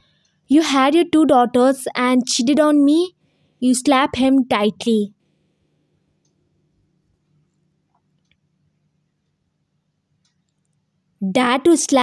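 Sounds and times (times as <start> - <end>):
faint low hum: 0.0 - 12.0
person speaking: 0.5 - 5.2, 11.2 - 12.0.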